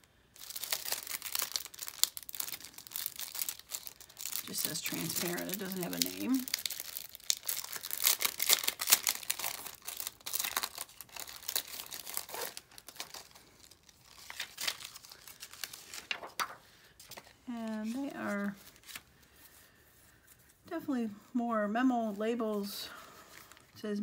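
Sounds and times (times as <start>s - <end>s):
plastic sheet crinkling: 0.0s - 20.7s.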